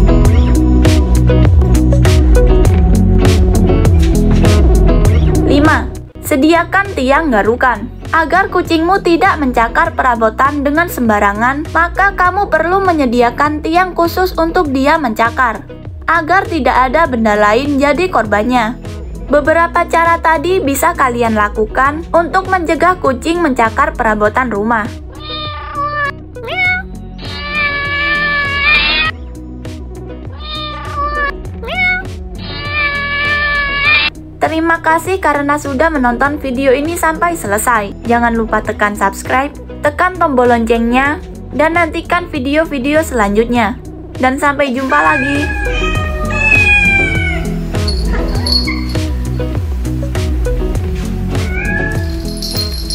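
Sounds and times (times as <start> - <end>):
background music: 0.0 - 52.9
cat meowing: 25.1 - 29.1, 30.3 - 34.1, 44.8 - 49.2, 51.3 - 52.3.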